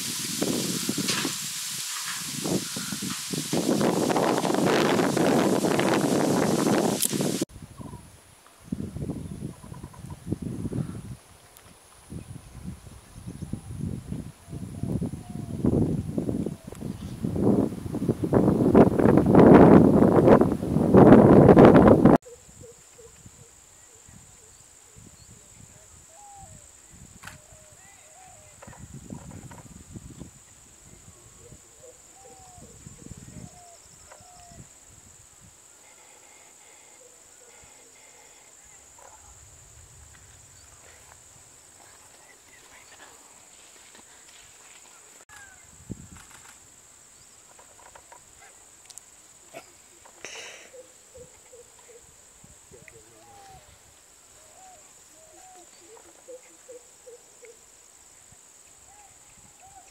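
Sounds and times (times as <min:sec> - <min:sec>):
high-pitched insect drone: 0:00.0 - 0:07.4, 0:32.2 - 0:41.2
wind buffeting microphone: 0:00.0 - 0:11.3, 0:12.1 - 0:22.2, 0:28.4 - 0:31.6, 0:45.6 - 0:46.5.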